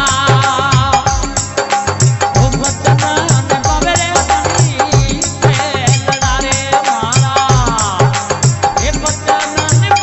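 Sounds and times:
steady drum beat: 0.0s - 10.0s.

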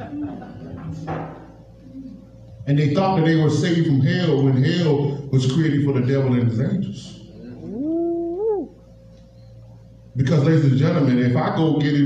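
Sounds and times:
faint steady hum: 0.0s - 12.0s
wordless vocal call rising in pitch: 7.4s - 8.8s.

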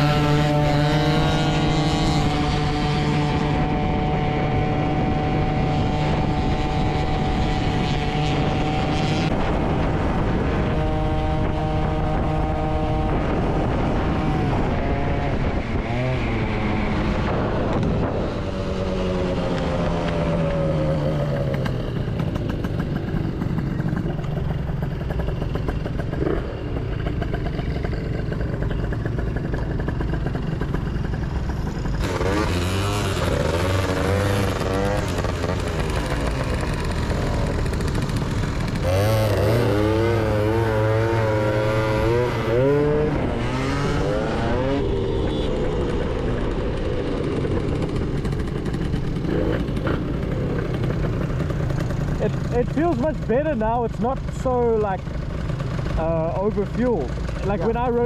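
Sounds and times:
engine revving up and down: 0.0s - 21.9s, 28.8s - 55.0s
wind noise: 0.0s - 23.8s
scooter engines droning: 0.0s - 58.0s.

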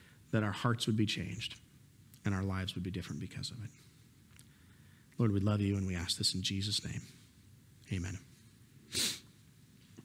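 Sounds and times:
sharp nose sniff: 8.9s - 9.3s.

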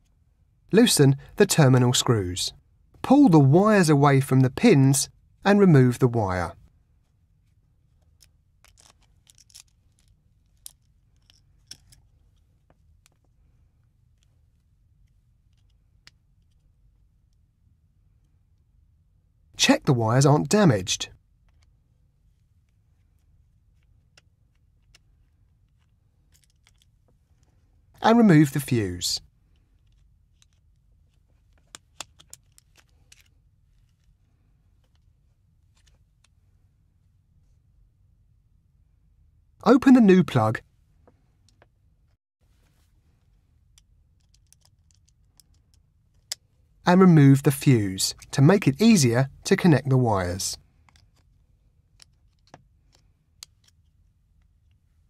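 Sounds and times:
clicks and scrapes of plastic plug: 43.7s - 46.4s.

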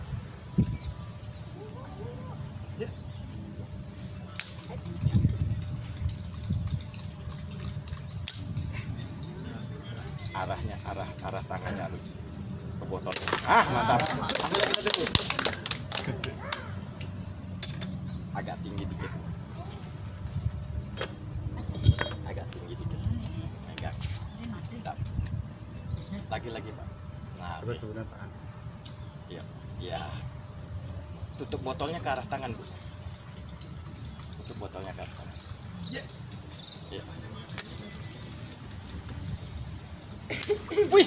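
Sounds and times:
low outdoor background: 0.0s - 41.0s
glass bottles clinking: 13.1s - 14.8s, 21.0s - 22.4s.

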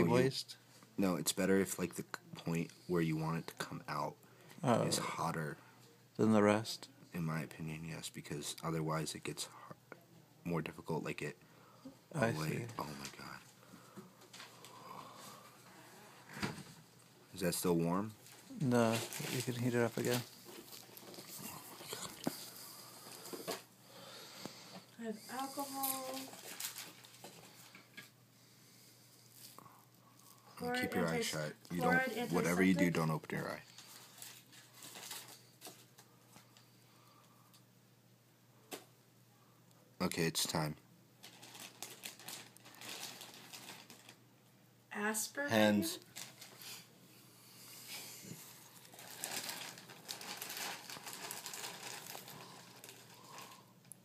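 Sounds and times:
gloved hands rustling and crinkling: 17.6s - 23.7s, 25.3s - 27.8s, 29.2s - 36.6s, 41.2s - 44.2s, 45.8s - 46.9s, 47.9s - 54.0s.

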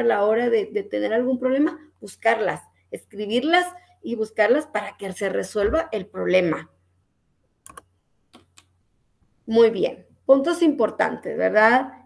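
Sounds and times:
faint computer clicks: 7.6s - 8.8s.

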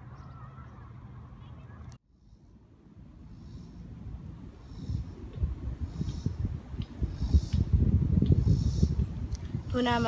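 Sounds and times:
steady low rumble: 0.9s - 10.0s.

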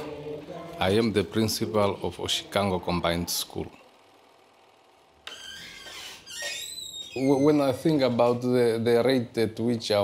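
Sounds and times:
door squeaking open: 5.2s - 7.9s.

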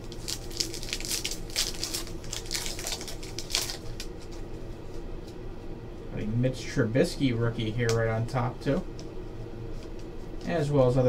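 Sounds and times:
wrapper and cards crinkling: 0.0s - 4.4s
low room hum: 0.0s - 11.0s.

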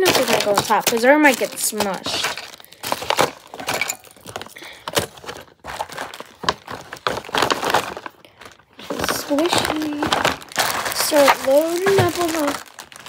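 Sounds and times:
paper bag rustling: 0.0s - 13.0s.

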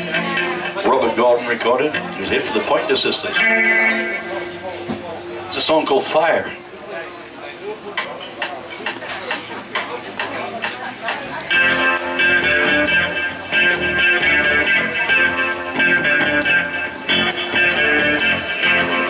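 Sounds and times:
electric guitar: 0.0s - 6.8s, 11.4s - 19.0s
band backing track: 0.0s - 19.0s.

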